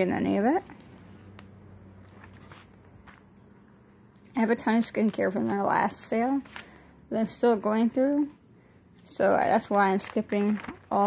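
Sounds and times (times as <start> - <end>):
low steady hum: 0.0 - 11.0
paper page rustling: 2.1 - 3.2, 9.4 - 11.0.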